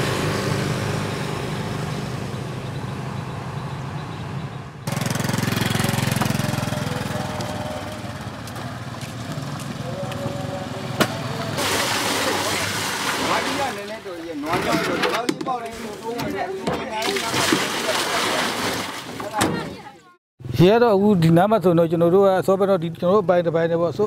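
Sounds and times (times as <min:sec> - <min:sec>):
motorbike engines running: 0:00.0 - 0:11.6
traffic hum: 0:00.0 - 0:24.0
water pouring into plastic tub: 0:11.6 - 0:14.0, 0:17.0 - 0:19.2.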